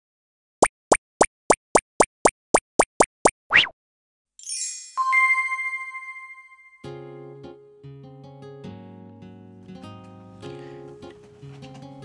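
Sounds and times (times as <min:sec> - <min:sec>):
cartoon pops: 0:00.6 - 0:03.8.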